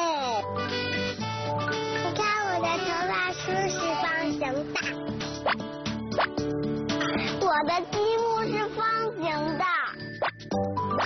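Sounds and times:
light children's music: 0.0 - 11.0
child's sing-song voice: 2.0 - 4.7, 7.4 - 10.0.

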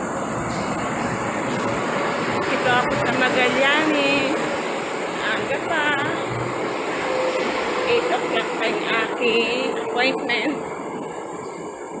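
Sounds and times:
train humming on elevated line: 0.0 - 12.0.

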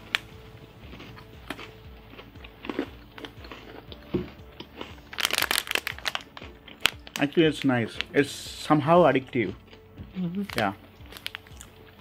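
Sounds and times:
crunchy cookie chewing: 0.0 - 12.0
plastic packet crinkling: 4.8 - 8.2, 10.4 - 11.7.

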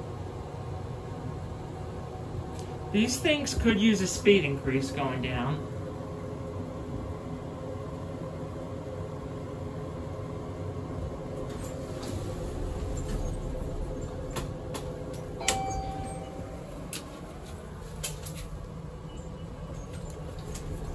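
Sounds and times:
elevator hum and rumble: 0.0 - 20.9
elevator clicks: 14.3 - 18.5
short single-tone beep: 15.4 - 16.5.

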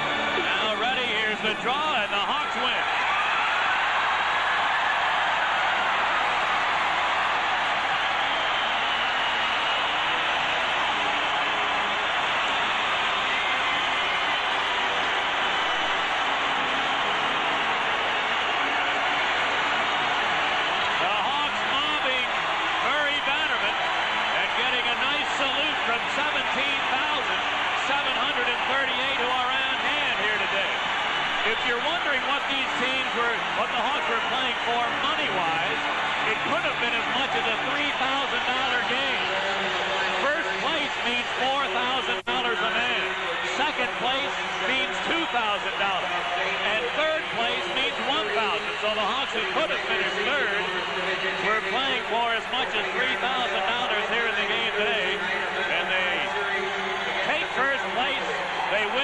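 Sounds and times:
crowd cheering and applauding: 0.0 - 59.0.

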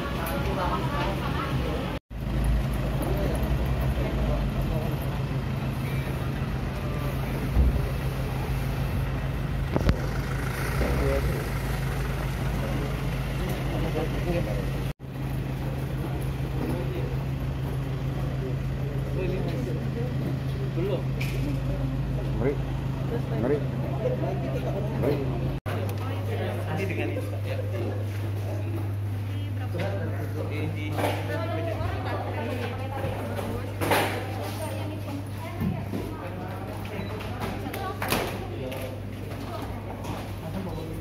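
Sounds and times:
people's voices: 0.0 - 2.0, 2.8 - 14.9, 15.6 - 41.0
vehicle engine humming: 0.0 - 27.4.

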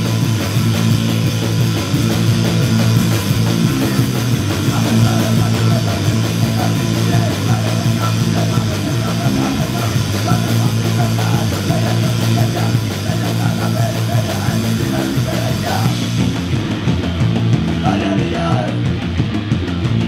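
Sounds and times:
hardcore punk band playing live: 0.0 - 20.0.

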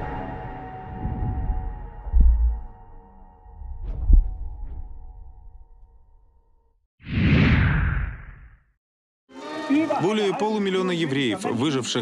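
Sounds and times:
deep rumble: 0.7 - 6.1.

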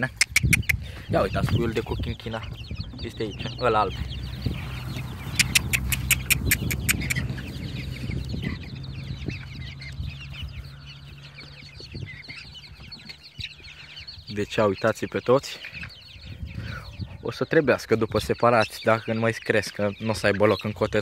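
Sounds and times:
young chickens clucking and peeping: 0.0 - 21.0
sharp clicks: 0.2 - 0.8, 5.3 - 7.2.

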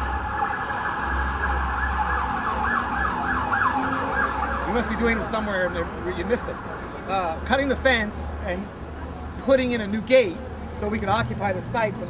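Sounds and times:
emergency siren yelping: 0.0 - 6.0.

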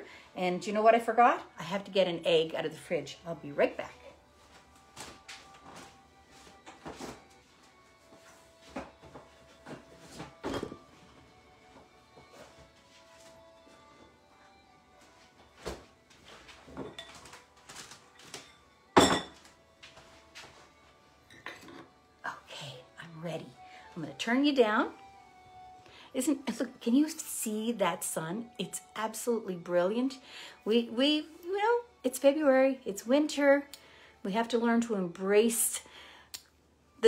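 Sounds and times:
faint music: 0.0 - 37.0
knocks and thunks in kitchen: 9.7 - 10.9.

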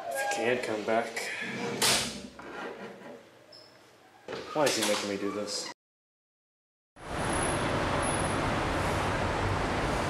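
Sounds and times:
road traffic hum: 7.0 - 10.0.

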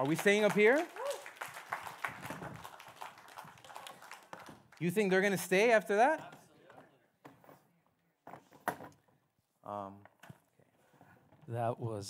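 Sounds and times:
audience applause: 0.0 - 5.2.

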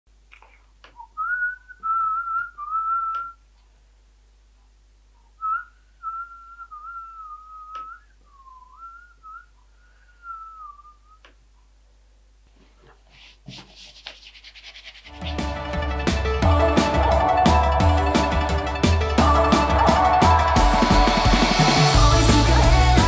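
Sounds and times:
person whistling a tune: 1.0 - 3.4, 5.4 - 11.3.

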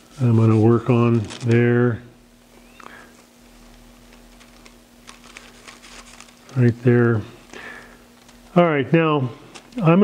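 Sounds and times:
steady low hum: 0.0 - 10.0
ticks and rustles of paper: 0.1 - 1.8, 2.8 - 6.9.

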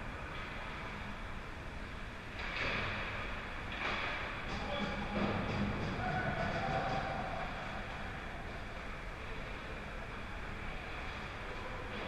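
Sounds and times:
skating and arena noise: 0.0 - 12.0.

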